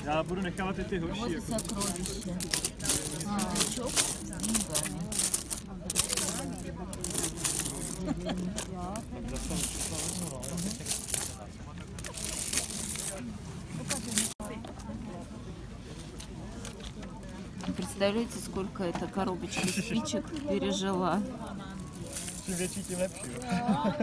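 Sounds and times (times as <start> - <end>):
metal coins clinking and sliding: 1.2 - 13.2, 13.9 - 14.4, 19.6 - 20.1, 21.9 - 23.5
wooden scoop digging coins: 1.4 - 13.2, 13.9 - 14.4, 19.5 - 20.0, 21.9 - 23.5.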